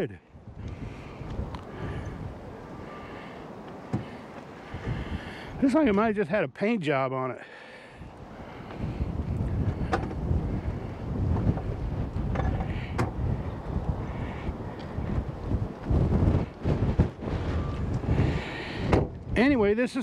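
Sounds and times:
wind buffeting microphone: 0.0s - 6.2s, 7.8s - 19.8s.

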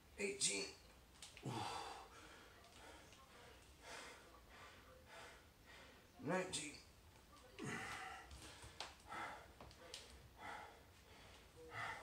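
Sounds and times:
man breathing hard: 1.4s - 6.0s, 7.6s - 12.0s.

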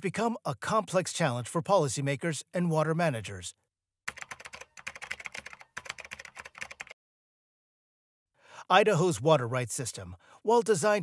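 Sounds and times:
computer keyboard typing: 4.1s - 7.0s.

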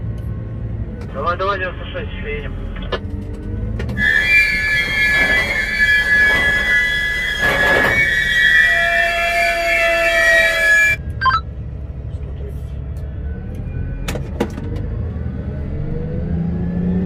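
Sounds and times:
low engine rumble: 0.0s - 16.4s
grinding noise: 4.0s - 11.0s
train wheels squealing: 4.0s - 11.4s.

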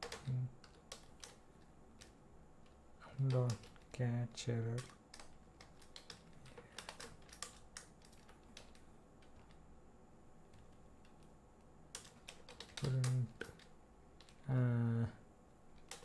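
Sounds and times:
typing on a computer keyboard: 0.0s - 4.0s, 4.6s - 9.6s, 10.5s - 11.3s, 11.9s - 14.4s, 15.8s - 16.0s.

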